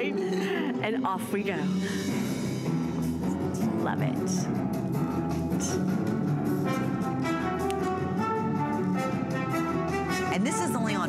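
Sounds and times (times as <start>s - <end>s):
orchestral music with brass: 4.9s - 11.0s.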